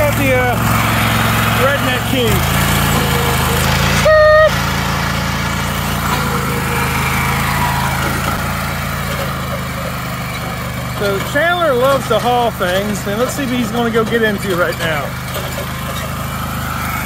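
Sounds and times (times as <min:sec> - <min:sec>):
lawn tractor engine running: 0:00.0 - 0:17.0
horn-like beep: 0:04.0 - 0:04.6.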